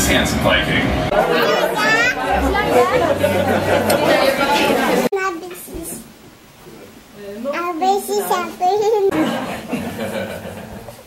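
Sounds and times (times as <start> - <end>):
people talking over one another: 1.1 - 5.4.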